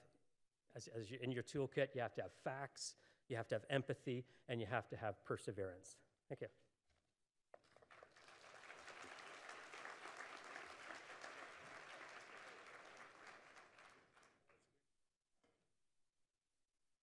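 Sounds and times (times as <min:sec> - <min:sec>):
audience applauding: 0:07.6 - 0:14.6.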